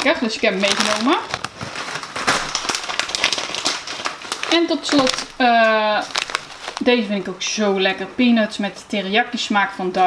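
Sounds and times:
foil snack bags crinkling: 0.0s - 7.6s.

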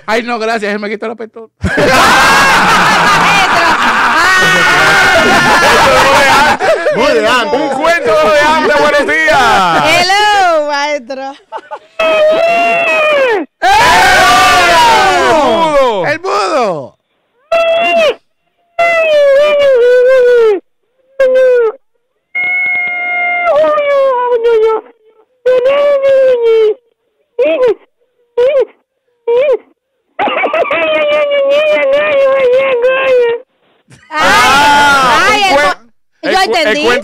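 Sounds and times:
people wailing with laughter: 1.6s - 10.0s, 11.5s - 15.9s.

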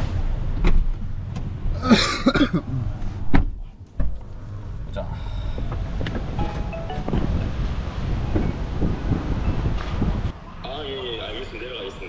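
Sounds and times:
street noise: 0.0s - 12.0s
wind buffeting microphone: 5.5s - 10.4s.

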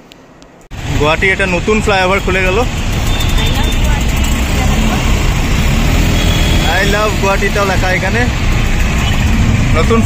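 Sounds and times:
vehicle engine and road rumble: 0.0s - 10.0s.

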